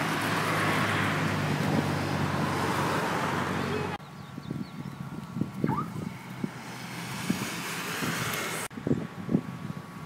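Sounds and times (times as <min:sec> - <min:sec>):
road traffic: 0:00.0 - 0:10.0
wind buffeting microphone: 0:03.9 - 0:10.0.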